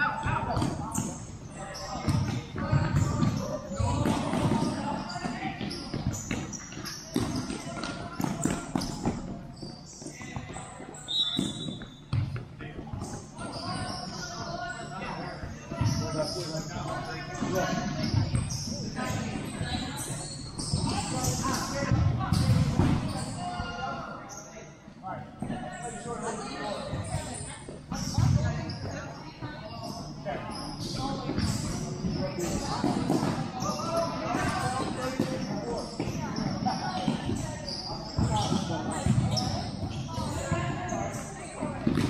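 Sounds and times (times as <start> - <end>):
ball kicked and bouncing: 41.8 - 42.0.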